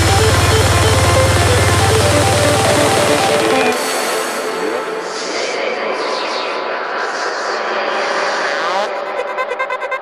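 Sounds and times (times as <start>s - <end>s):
rushing noise sweep: 0.0s - 9.1s.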